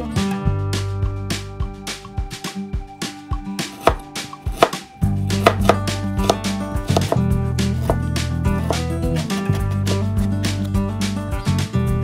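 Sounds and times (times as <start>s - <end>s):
background music: 0.0s - 12.0s
knife chopping on cutting board: 3.7s - 9.7s.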